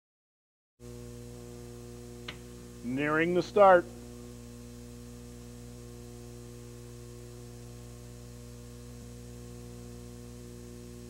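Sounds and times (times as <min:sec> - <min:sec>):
electrical mains hum: 0:00.8 - 0:11.0
announcer's voice: 0:02.9 - 0:03.9.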